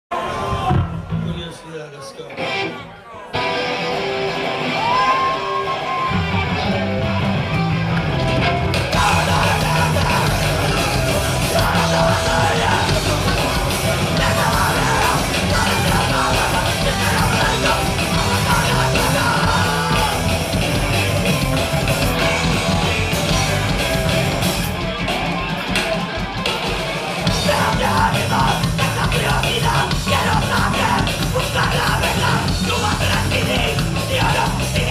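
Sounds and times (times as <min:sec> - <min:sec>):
bass guitar: 0:00.1 - 0:01.5, 0:02.4 - 0:34.9
punk band playing live: 0:00.1 - 0:01.5, 0:02.3 - 0:34.9
shouted vocals: 0:04.6 - 0:06.8, 0:08.8 - 0:21.3, 0:27.3 - 0:34.9
drums and crashing cymbals: 0:07.5 - 0:34.9.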